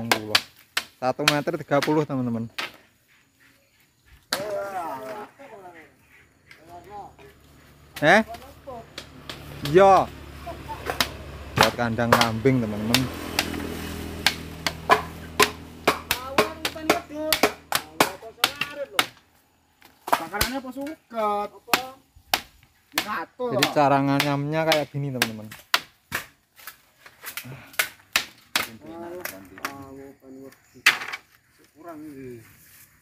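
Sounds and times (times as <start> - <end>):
hand tool knocking bamboo: 0.0 - 2.8, 10.8 - 19.2, 20.0 - 20.9, 21.7 - 26.3, 27.7 - 29.8.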